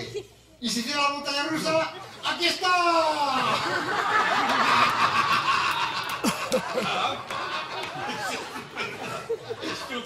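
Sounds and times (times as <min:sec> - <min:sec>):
audience laughing: 0:03.3 - 0:10.0.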